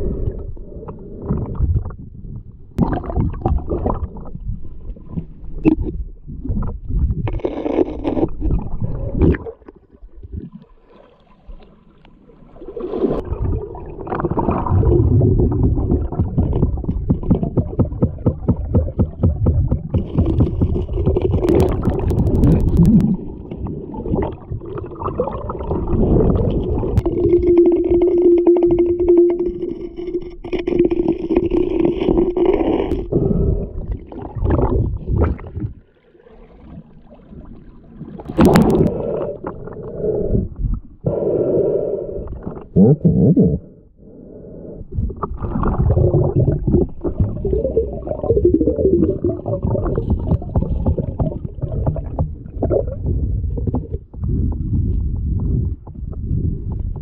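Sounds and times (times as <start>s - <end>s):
underwater rushing current: 36.2s - 40.2s.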